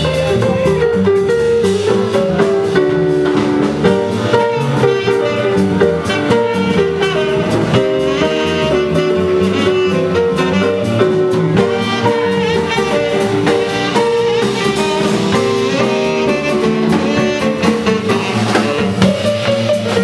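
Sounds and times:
drums keeping time: 0.0s - 20.0s
piano: 0.0s - 20.0s
saxophone melody: 0.0s - 20.0s
walking upright bass: 0.0s - 20.0s.

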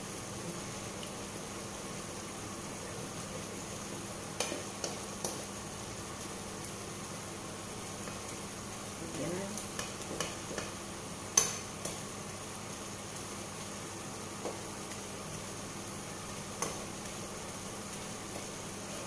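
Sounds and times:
dal simmering sizzle: 0.0s - 19.0s
spatula knocking and scraping pan: 9.7s - 10.8s.

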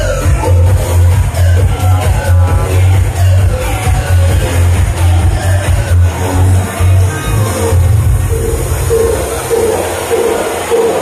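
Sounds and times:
loud dance music: 0.0s - 11.0s
repeating mid-pitched note: 7.4s - 11.0s.

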